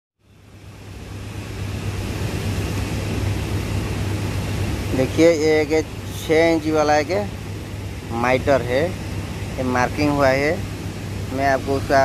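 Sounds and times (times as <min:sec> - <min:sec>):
low hum: 0:00.2 - 0:12.0.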